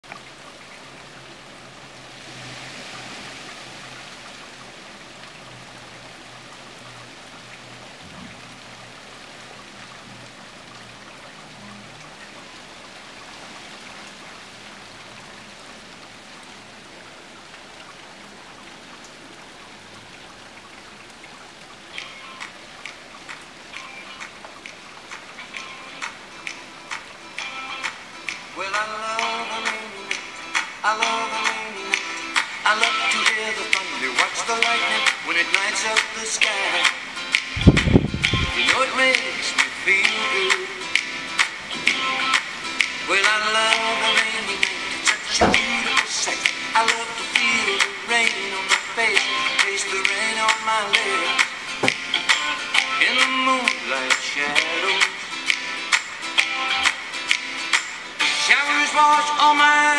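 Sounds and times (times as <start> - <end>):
rain falling: 0.0 - 59.9
song with clicking beat: 21.9 - 58.4.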